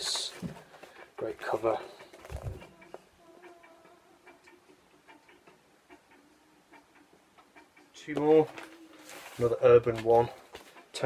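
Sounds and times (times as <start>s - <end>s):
pigeon cooing: 0.0s - 9.4s.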